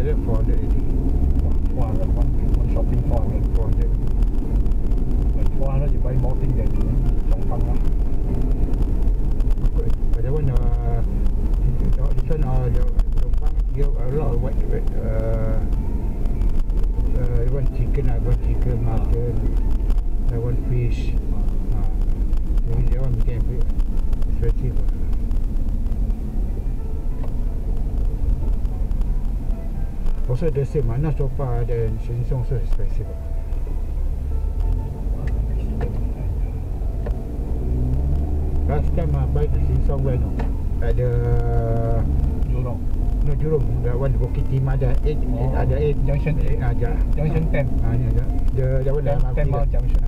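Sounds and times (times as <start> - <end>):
car engine and tyres droning: 0.0 - 50.0
person talking: 38.7 - 50.0.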